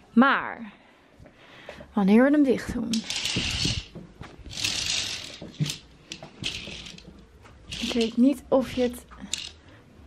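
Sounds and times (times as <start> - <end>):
curtain runners sliding in track: 2.9 - 9.6.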